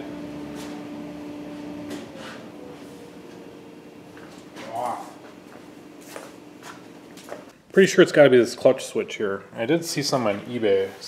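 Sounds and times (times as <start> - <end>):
electric motor humming and winding down: 0.0 - 7.4.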